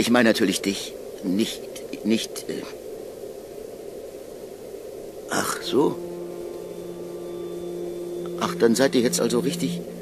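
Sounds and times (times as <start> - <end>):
low sustained drone: 5.0 - 10.0.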